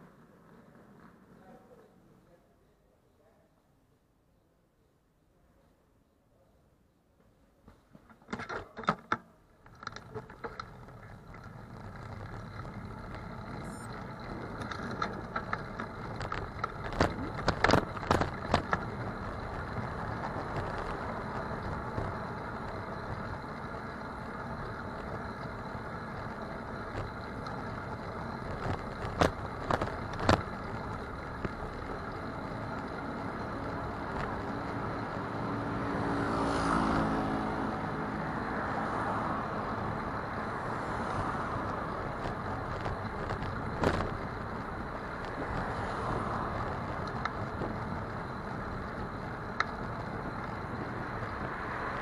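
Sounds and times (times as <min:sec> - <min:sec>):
wind and road noise: 0:08.4 - 0:52.0
motor vehicle passing: 0:09.9 - 0:52.0.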